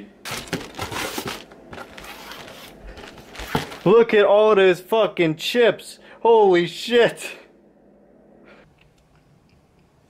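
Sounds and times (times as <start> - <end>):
crinkling: 0.2 - 3.9
rustling and knocking handling noise: 0.3 - 3.9.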